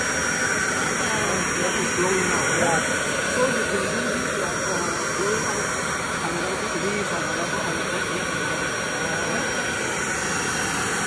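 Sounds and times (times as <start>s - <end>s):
backpack blower running with whine: 0.0s - 11.0s.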